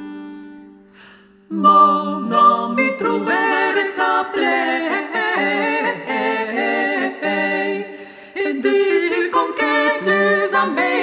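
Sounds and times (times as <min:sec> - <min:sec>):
female vocal ensemble singing: 0:00.0 - 0:11.0.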